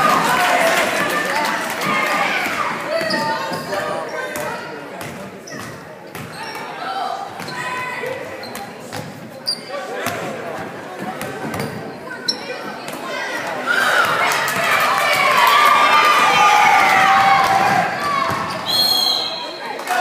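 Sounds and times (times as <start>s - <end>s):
indistinct shouts and chatter: 0.0s - 8.5s, 11.8s - 20.0s.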